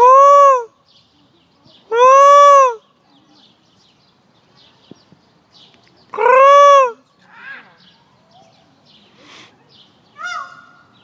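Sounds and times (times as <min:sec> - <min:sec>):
peacock call: 0:01.9 - 0:02.8, 0:10.2 - 0:10.9.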